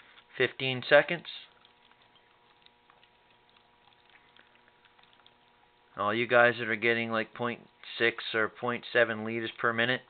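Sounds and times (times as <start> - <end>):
bubbling and crackling: 0.0 - 7.9
faint steady hum: 0.0 - 10.0.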